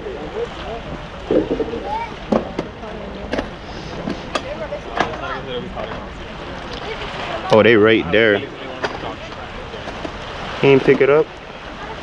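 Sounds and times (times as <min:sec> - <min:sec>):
people talking in background: 0:00.0 - 0:12.0.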